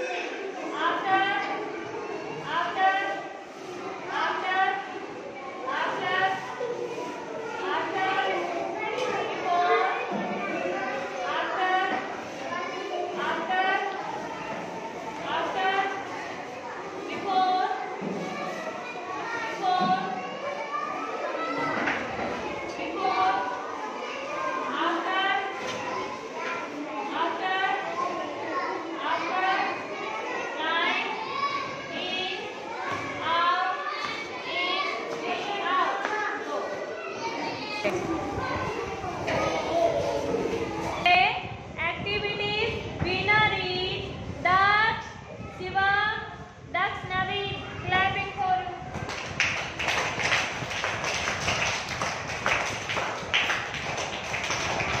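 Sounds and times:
young children talking and calling: 0.0s - 55.0s.

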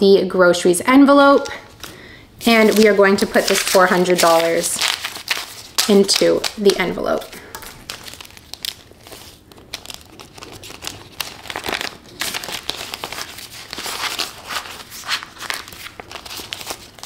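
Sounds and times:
plastic envelope and banknotes crinkling: 1.2s - 17.0s.

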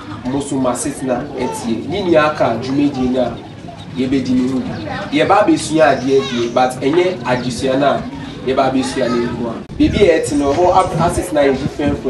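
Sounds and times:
bird cooing: 0.0s - 9.6s
man speaking: 0.0s - 12.0s.

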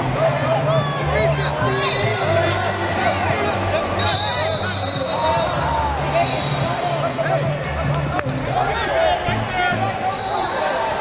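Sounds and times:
crowd shouting in a hall: 0.0s - 11.0s.

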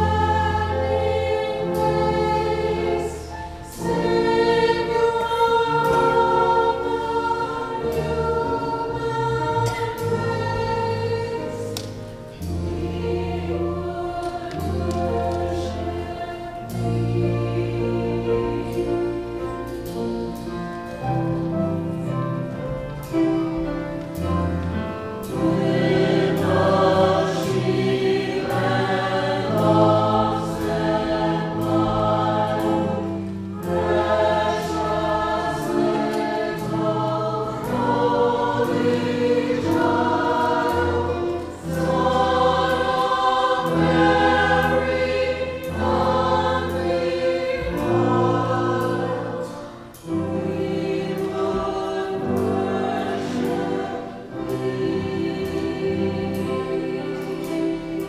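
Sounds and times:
choir singing: 0.0s - 58.0s
instrumental accompaniment: 0.0s - 58.0s.

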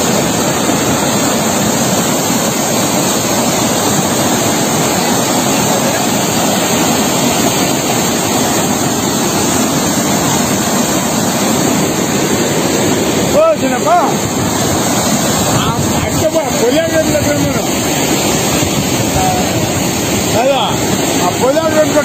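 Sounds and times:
water rushing over a weir: 0.0s - 22.0s.

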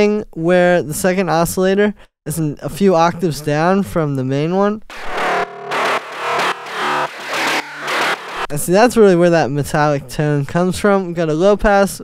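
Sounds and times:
metallic synth bass line: 4.9s - 8.5s.

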